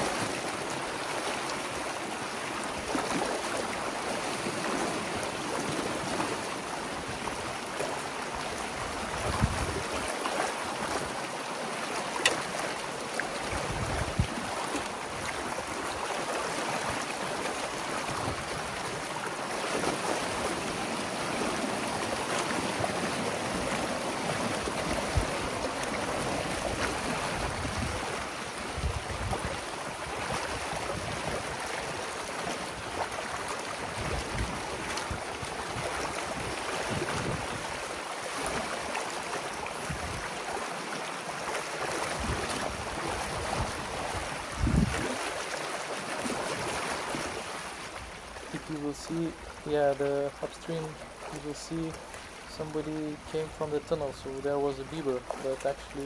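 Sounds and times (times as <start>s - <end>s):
water rushing through a breach: 0.0s - 56.0s.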